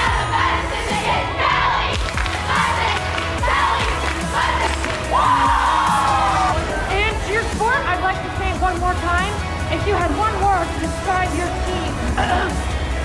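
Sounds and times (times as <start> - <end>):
girls shouting and cheering: 0.0 - 8.8
music: 0.0 - 13.0.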